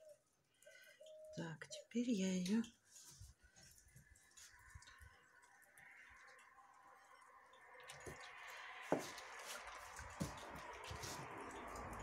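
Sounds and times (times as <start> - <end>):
wet fabric squishing: 2.8 - 12.0.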